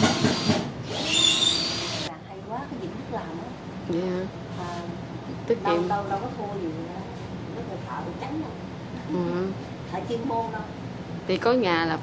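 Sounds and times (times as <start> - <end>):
power drill whining: 0.0 - 2.1.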